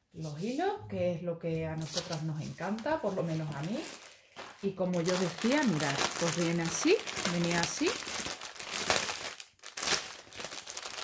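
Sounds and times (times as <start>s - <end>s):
plastic packaging crinkling: 1.8s - 11.0s.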